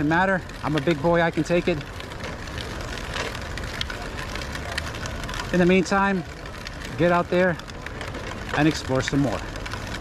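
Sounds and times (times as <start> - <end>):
faint clicks: 0.6 - 10.0.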